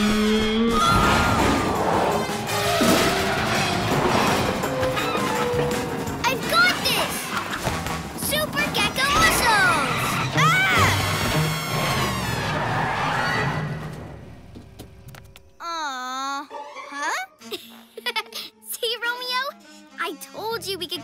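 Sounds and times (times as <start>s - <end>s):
cartoon action music: 0.0s - 13.9s
crash and impact effects: 0.7s - 8.2s.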